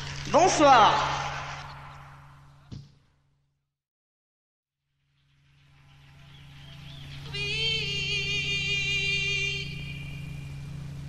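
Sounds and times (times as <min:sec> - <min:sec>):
steady low drone: 0:04.9 - 0:11.0
held high note with waver: 0:05.8 - 0:11.0.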